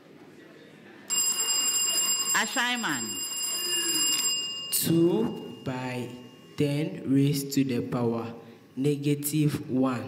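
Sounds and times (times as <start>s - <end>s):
electric buzzer bell ringing: 1.1s - 7.9s.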